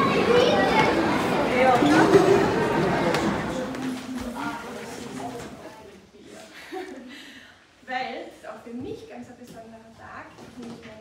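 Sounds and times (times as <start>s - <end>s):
children talking and calling out: 0.0s - 6.3s.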